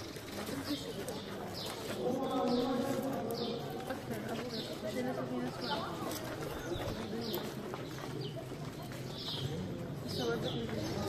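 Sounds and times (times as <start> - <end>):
birds chirping: 0.0 - 11.0
murmur of voices: 0.0 - 11.0.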